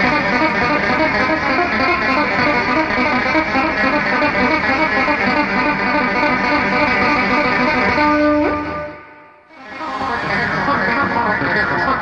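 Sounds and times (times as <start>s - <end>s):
electric bass guitar run: 0.0s - 8.9s.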